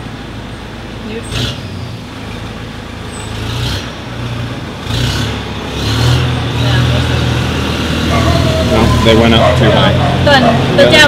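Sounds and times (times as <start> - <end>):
engine rumble: 0.0 - 11.0.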